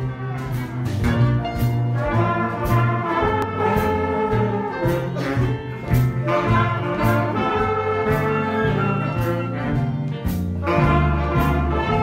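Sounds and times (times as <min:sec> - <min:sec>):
bass line: 0:00.0 - 0:12.0
big band jazz: 0:00.0 - 0:12.0.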